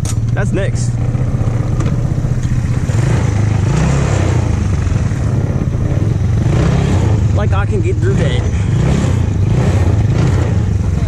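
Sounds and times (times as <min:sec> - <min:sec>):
go-kart engine running: 0:00.0 - 0:11.0.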